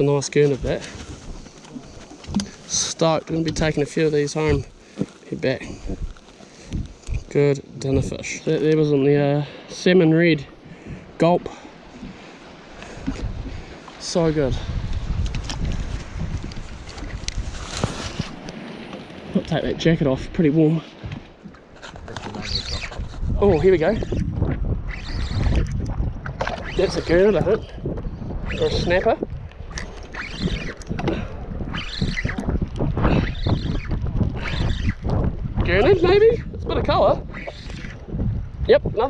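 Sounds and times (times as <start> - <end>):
wind buffeting microphone: 0.0 - 9.4, 10.3 - 39.0.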